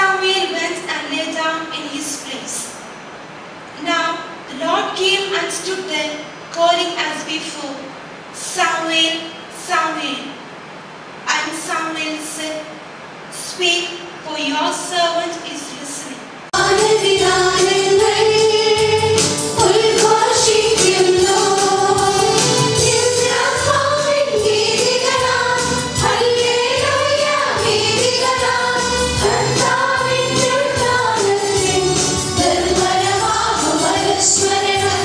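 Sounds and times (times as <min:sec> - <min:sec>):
choir singing a hymn: 0:16.6 - 0:35.0
musical accompaniment: 0:16.6 - 0:35.0.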